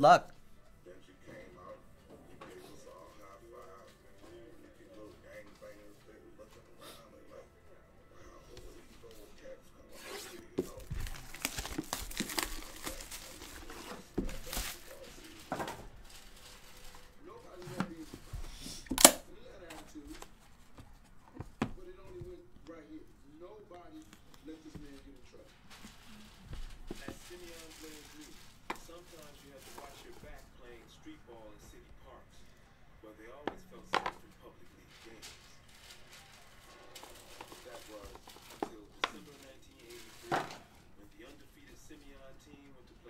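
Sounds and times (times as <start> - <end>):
shrink-wrap crackling: 9.9 - 22.2, 24.0 - 30.9, 33.8 - 42.5
handling of box: 10.0 - 22.4.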